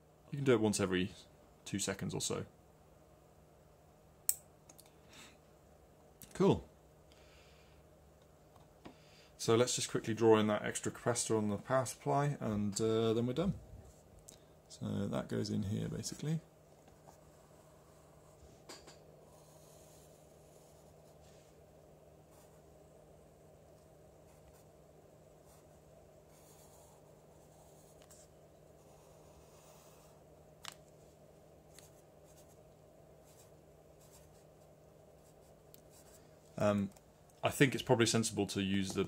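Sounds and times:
steady low hum: 0.0 - 39.0
pencil strokes on paper: 19.2 - 21.6, 25.4 - 30.2.

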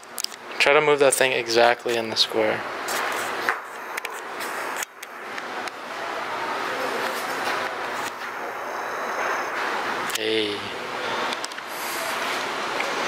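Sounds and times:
steady rushing noise: 2.3 - 13.0.

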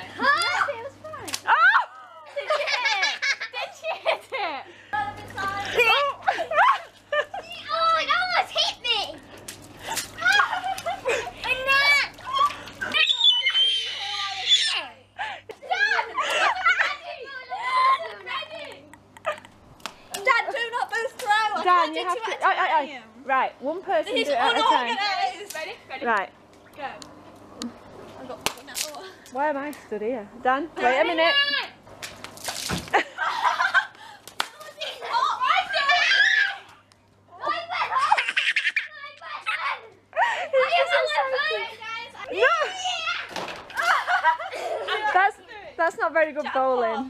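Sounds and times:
children shrieking and laughing: 0.0 - 19.5, 32.9 - 45.6
high excited voices: 0.0 - 19.6, 33.0 - 45.6.

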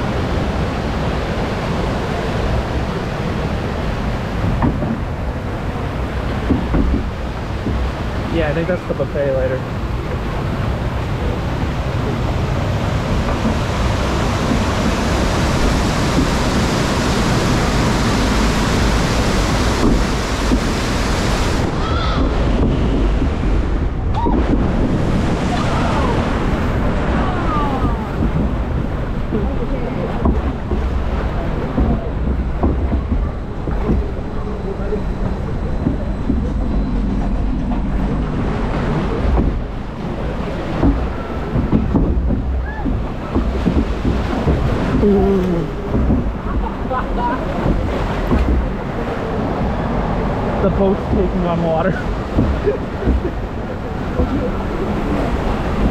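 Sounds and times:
water rushing in flume channel: 0.0 - 55.9.

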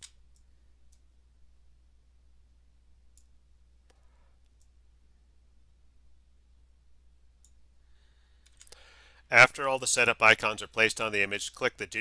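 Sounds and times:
low steady hum: 0.0 - 12.0
computer mouse clicks: 3.1 - 4.8, 7.4 - 7.6, 8.4 - 8.8.

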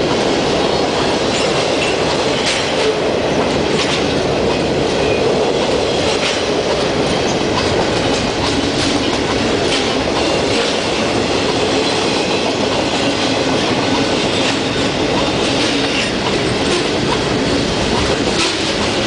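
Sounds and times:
freight train wheels rumbling on rails: 0.0 - 19.0
sharp clicks of train wheels: 0.0 - 19.0.

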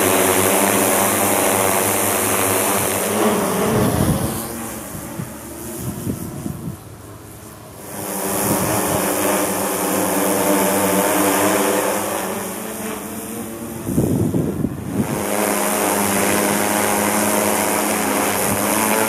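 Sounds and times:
drone propeller hum: 0.0 - 19.0
low rumbling wind buffeting: 3.5 - 7.0, 13.8 - 15.2.

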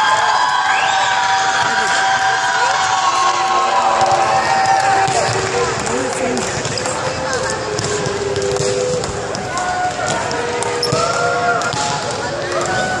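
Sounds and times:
volleyballs smacking and bouncing: 3.7 - 13.0.

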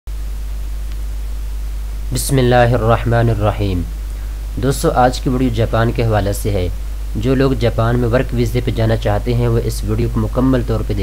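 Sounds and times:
low hum: 0.1 - 11.0
even hiss: 0.3 - 11.0.

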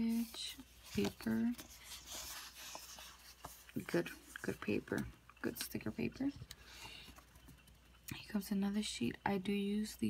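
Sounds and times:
paper rustling: 0.0 - 5.1.

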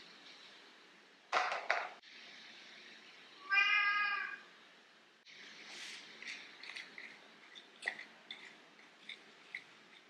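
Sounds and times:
cat meowing: 3.4 - 4.4.

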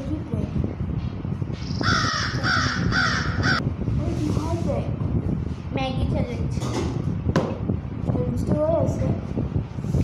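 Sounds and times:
crow cawing: 1.8 - 3.6.

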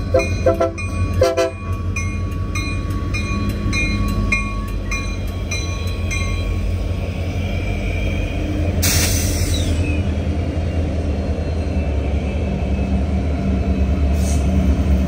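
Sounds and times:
crossing bell dinging: 0.0 - 6.9
diesel locomotive engine rumble: 0.0 - 15.0
train horn blast: 0.1 - 1.7.

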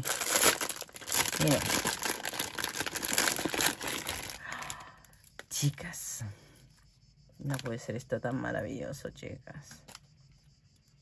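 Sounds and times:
cellophane bag crinkling: 0.0 - 5.4.

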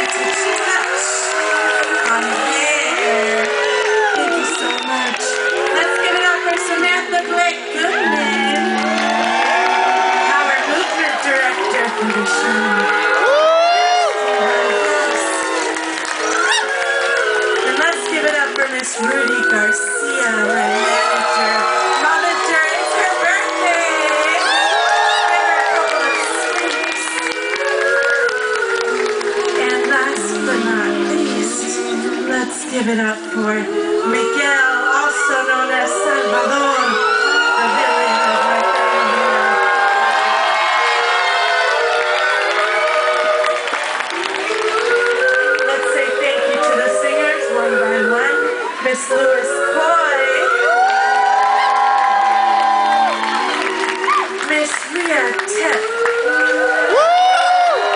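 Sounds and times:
audience cheering and whooping: 0.0 - 31.2, 35.8 - 57.9
audience clapping: 0.0 - 32.8, 35.9 - 57.9
woman singing high note: 17.6 - 39.7.

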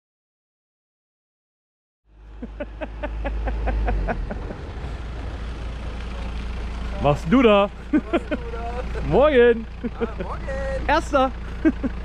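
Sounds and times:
vehicle rumbling on concrete road: 2.0 - 12.0.

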